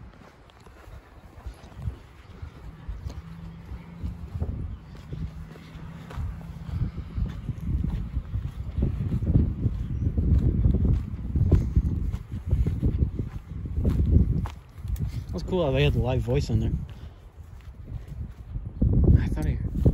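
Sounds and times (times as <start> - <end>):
footsteps on pine needles: 0.0 - 18.4.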